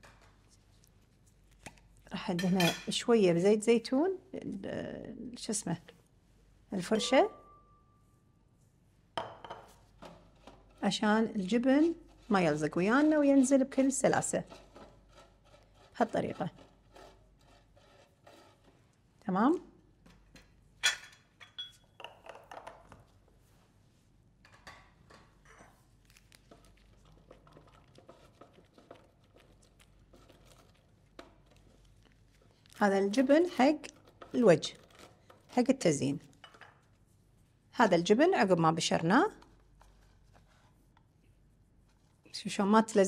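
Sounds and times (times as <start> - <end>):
cheese grater scraping: 11.5 - 18.8, 33.1 - 35.8.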